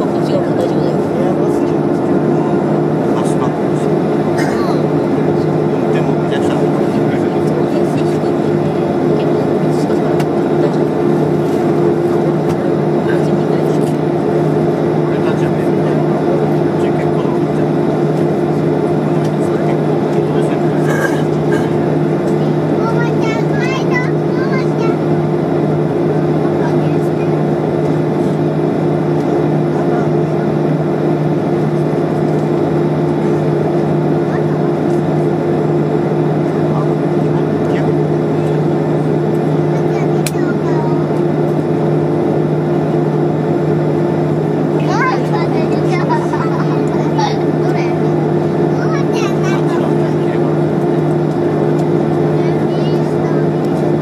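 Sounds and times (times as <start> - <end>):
jet engines idling: 0.0 - 54.0.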